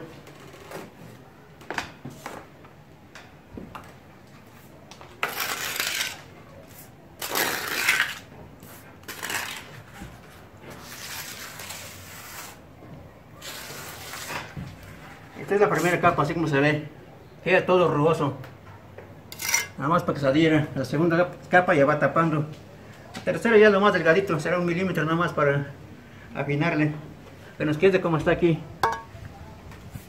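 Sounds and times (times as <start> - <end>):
trowel scraping plaster: 5.2 - 10.1, 10.7 - 12.6, 13.4 - 15.3, 19.3 - 19.8.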